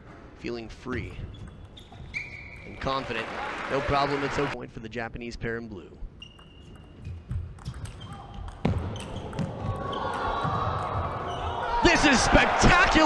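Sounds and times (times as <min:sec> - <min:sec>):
crowd noise: 0:02.7 - 0:04.6, 0:09.4 - 0:13.0.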